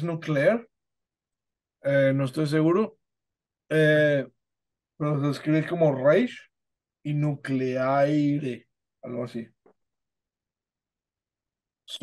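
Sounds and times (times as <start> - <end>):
man speaking: 0.0 - 0.7, 1.8 - 3.0, 3.7 - 4.4, 5.0 - 9.6.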